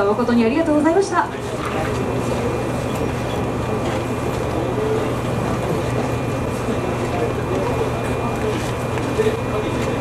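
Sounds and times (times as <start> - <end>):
electric train humming: 0.0 - 10.0
faint murmur of people: 0.0 - 10.0.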